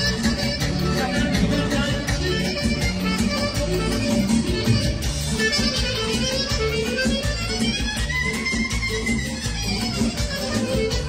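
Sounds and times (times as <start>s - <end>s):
wedding band playing party music: 0.0s - 11.0s.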